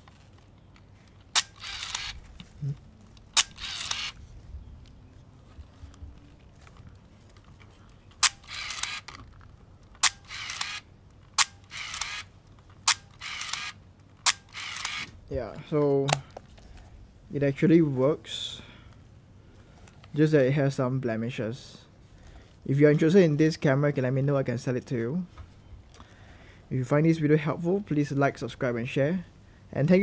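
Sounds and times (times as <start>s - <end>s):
camera shutter clicking: 1.3s - 2.2s, 3.3s - 4.2s, 8.2s - 9.2s, 10.0s - 15.2s
film advance winding rasp: 1.3s - 2.2s, 3.3s - 4.2s, 8.2s - 9.2s, 10.0s - 12.3s, 12.9s - 15.1s.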